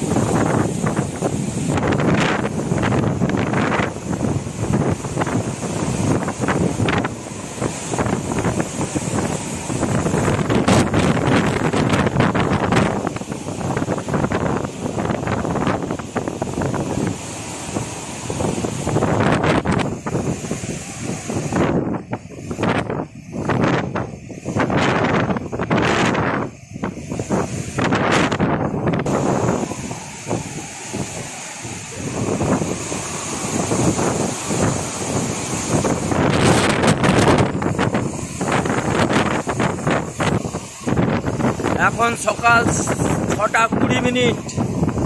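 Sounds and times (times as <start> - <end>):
rough sea surf: 0.0 - 45.0
storm wind gusting on microphone: 0.0 - 45.0.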